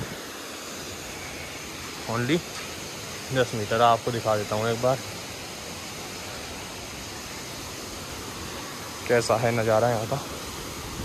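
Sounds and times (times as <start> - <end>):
waterfall and stream rushing: 0.0 - 11.0.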